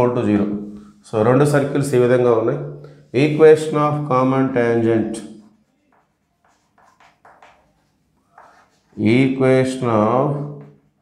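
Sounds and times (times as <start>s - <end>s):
chalk scratching on chalkboard: 5.6s - 9.2s
man's voice: 8.9s - 10.7s.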